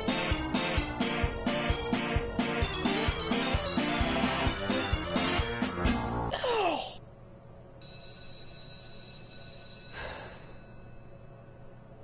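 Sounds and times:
high-pitched ringing tone: 7.8s - 11.8s.

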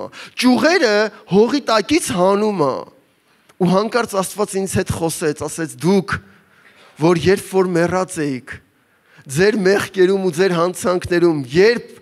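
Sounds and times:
man preaching into a microphone: 0.0s - 12.0s.

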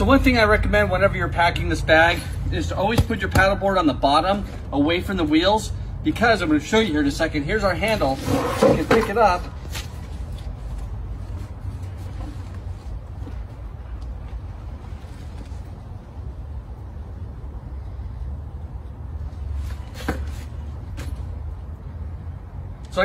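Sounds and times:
low outdoor rumble: 0.0s - 23.0s.

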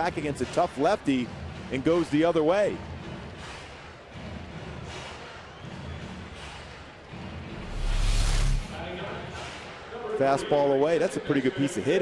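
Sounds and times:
rush of noise with deep rumble: 7.5s - 8.8s.

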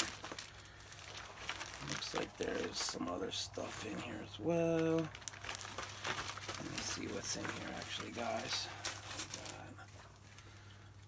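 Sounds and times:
cardboard and paper rustling: 0.0s - 10.8s.

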